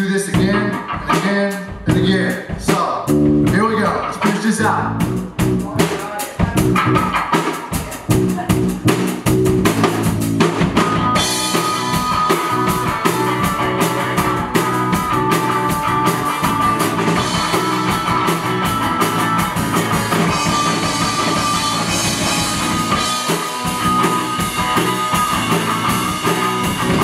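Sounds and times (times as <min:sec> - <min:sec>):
drum kit beating: 0:00.0 - 0:27.0
live country band playing: 0:00.0 - 0:27.0
held electric guitar line: 0:08.1 - 0:27.0.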